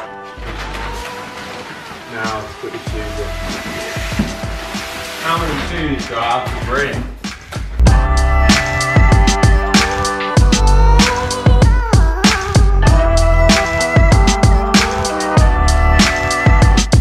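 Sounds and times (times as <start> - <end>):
music with singing: 0.0 - 17.0.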